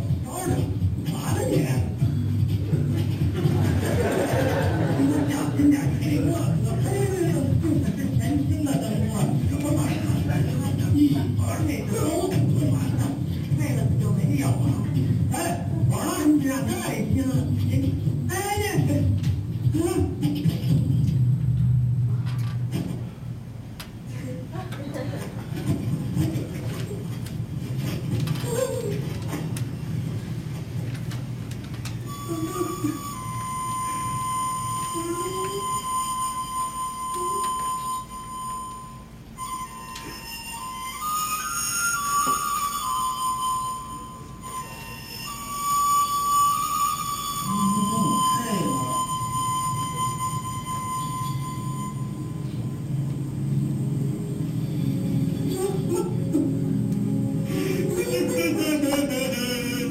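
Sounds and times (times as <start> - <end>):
flute-like high melody: 32.0 - 53.1, 55.3 - 59.9
person speaking: 47.5 - 49.2, 57.6 - 59.9.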